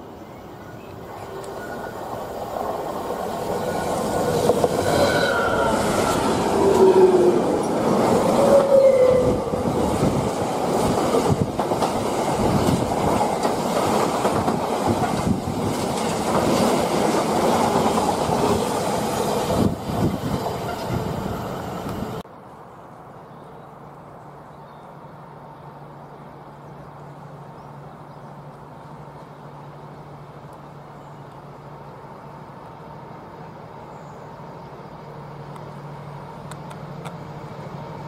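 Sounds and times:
diesel locomotive engine: 0.0s - 22.2s, 23.7s - 38.0s
wheels squealing: 3.4s - 10.0s.

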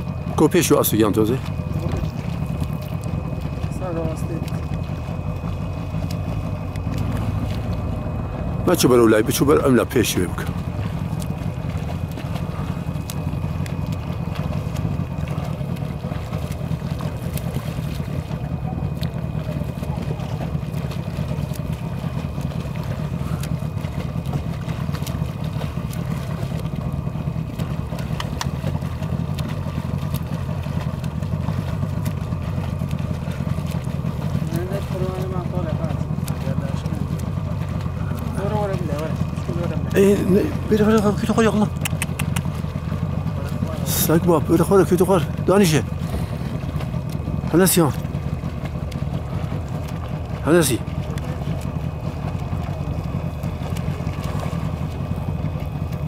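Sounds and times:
boat motor droning: 0.0s - 56.0s.

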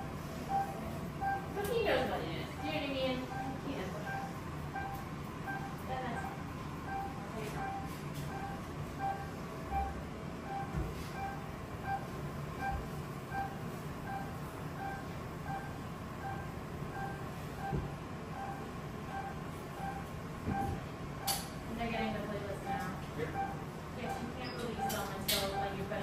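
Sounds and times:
electronic beeping: 0.0s - 21.4s, 22.6s - 23.6s, 24.4s - 25.8s
low steady hum: 0.0s - 26.0s.

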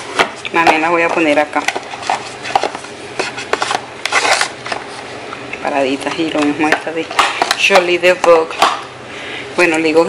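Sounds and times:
plastic cases clicking and scraping: 1.6s - 4.9s.

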